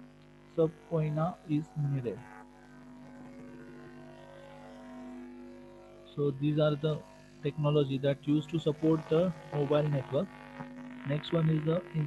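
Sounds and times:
low hum of held tones: 0.0s - 12.0s.

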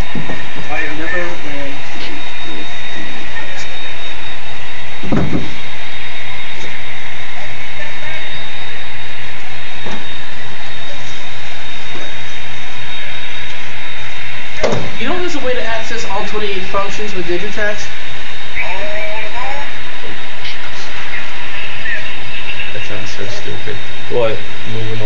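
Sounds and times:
room hiss and hum: 0.0s - 25.0s
thin steady tones: 0.0s - 25.0s
faint indistinct voices: 14.6s - 25.0s.

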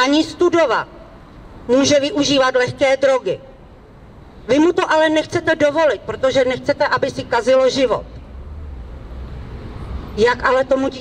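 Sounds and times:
low city background rumble: 0.0s - 11.0s.

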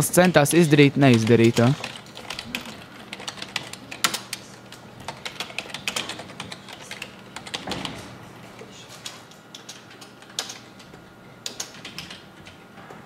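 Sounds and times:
computer keyboard typing: 1.0s - 12.6s.

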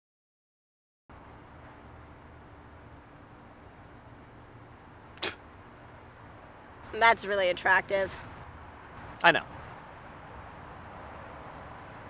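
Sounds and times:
faint outdoor background: 1.1s - 12.0s
person spitting: 5.2s - 5.4s.

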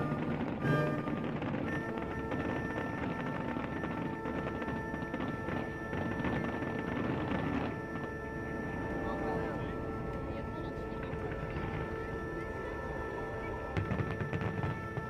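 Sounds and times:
fireworks crackling: 0.0s - 15.0s
steady pitched tone: 0.0s - 15.0s
crowd noise: 6.4s - 15.0s.

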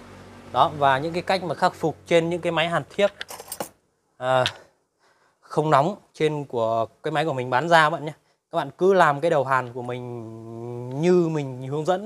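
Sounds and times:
small metal parts clinking: 3.0s - 3.8s
person saying uh: 10.0s - 12.0s.

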